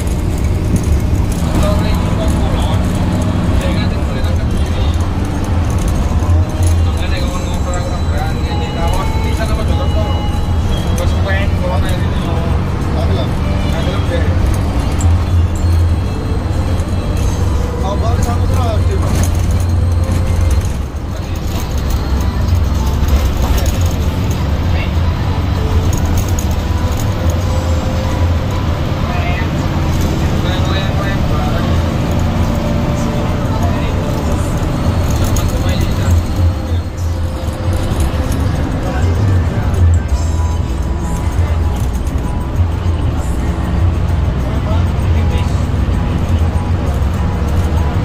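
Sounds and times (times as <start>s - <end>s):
background music: 0.0s - 48.0s
bus engine and road noise: 0.0s - 48.0s
indistinct voices: 0.0s - 48.0s.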